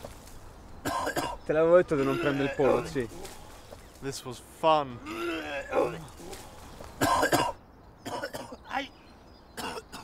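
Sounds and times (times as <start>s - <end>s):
man coughing: 0.8s - 1.4s, 2.0s - 3.0s, 7.0s - 8.6s, 9.6s - 10.0s.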